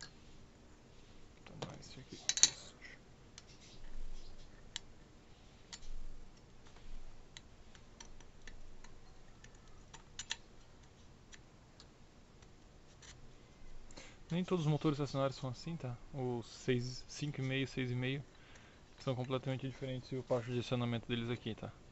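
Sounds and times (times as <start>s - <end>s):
metallic clicks of engine parts: 7.3s - 13.2s.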